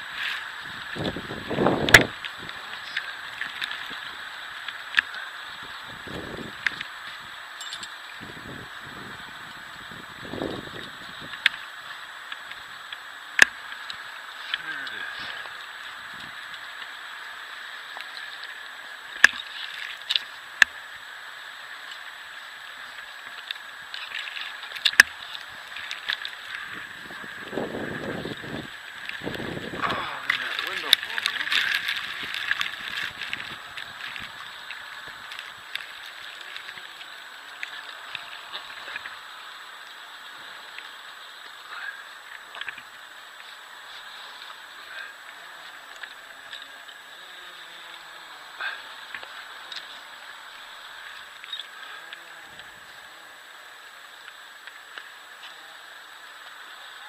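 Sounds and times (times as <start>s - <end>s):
steady hiss: 0.0s - 57.0s
rope and gear rustling and clicking: 23.0s - 39.1s.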